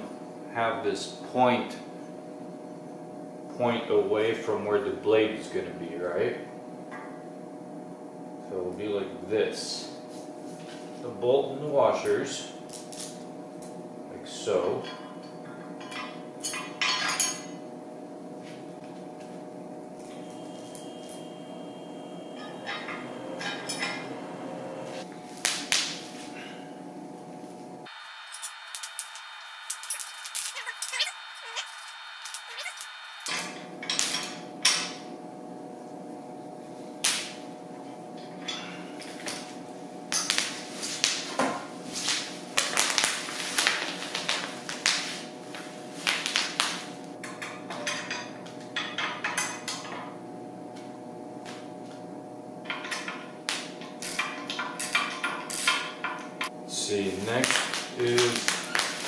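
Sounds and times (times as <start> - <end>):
steady hum: 0.0 - 41.1.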